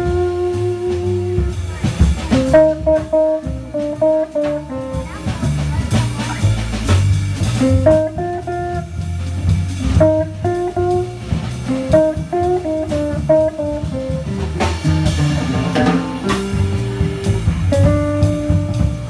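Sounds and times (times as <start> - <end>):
electric guitar solo: 0.0 - 1.5, 2.4 - 5.1, 7.6 - 9.0, 9.8 - 19.0
drum kit with cymbals: 0.0 - 19.0
plucked double bass: 0.0 - 19.0.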